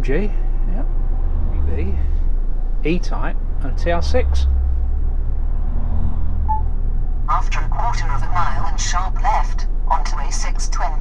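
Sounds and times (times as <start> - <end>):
engine and tyres rumbling: 0.0 - 11.0.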